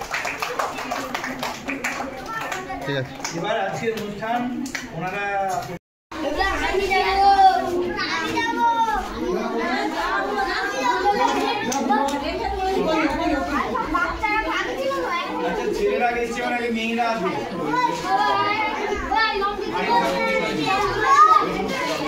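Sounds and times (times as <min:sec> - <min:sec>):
children talking and calling out: 0:01.8 - 0:03.8, 0:06.1 - 0:22.0.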